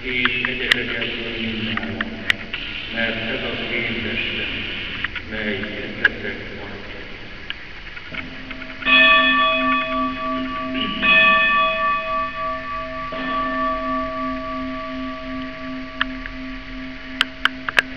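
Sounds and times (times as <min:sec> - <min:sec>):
bell ringing: 0:08.6 - 0:17.9.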